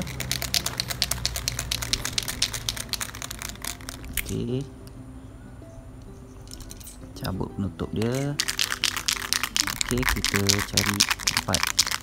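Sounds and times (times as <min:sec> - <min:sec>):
spray can ball rattling: 0:00.0 - 0:04.4, 0:08.0 - 0:12.0.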